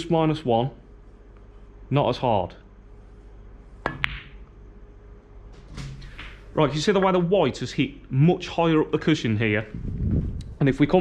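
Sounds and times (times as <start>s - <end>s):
snooker balls clicking: 3.8s - 4.5s.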